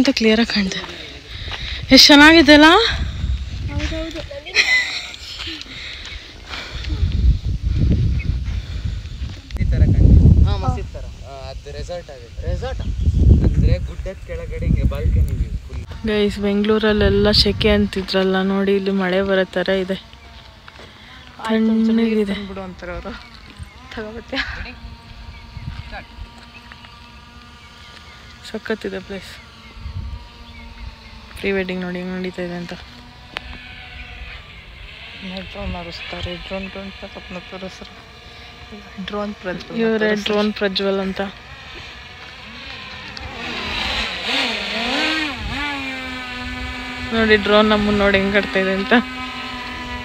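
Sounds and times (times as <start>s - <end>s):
drone propellers whining: 0.0s - 50.0s
low steady rumble: 0.0s - 50.0s.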